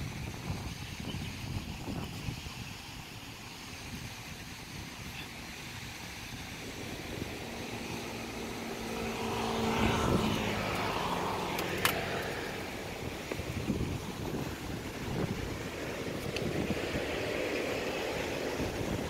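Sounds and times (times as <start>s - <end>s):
vehicle passing on road: 6.2s - 19.0s.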